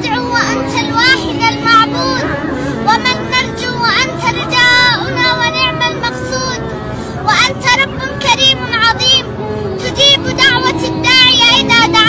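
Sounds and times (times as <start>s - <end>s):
boy singing melodic chant: 0.0s - 12.0s.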